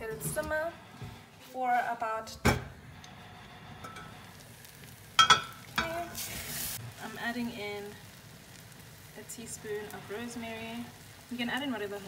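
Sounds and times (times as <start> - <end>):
muffled vegetables sizzling in pot: 2.6 - 12.0.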